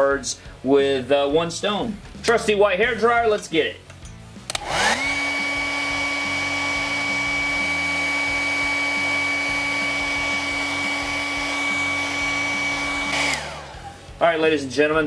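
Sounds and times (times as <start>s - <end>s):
hair dryer running: 4.4s - 14.2s.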